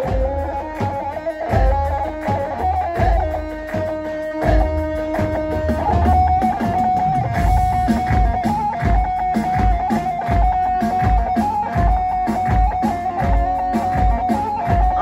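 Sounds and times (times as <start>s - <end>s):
deep drum beat: 0.0s - 15.0s
electric saz melody: 0.0s - 15.0s.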